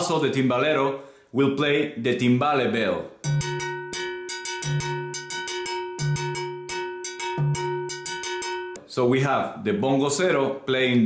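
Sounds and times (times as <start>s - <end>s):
bell struck with wooden stick: 3.2s - 8.9s.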